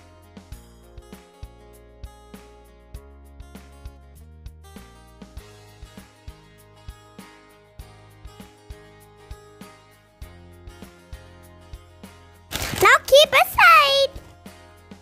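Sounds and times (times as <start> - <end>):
child's voice: 12.6 - 14.2.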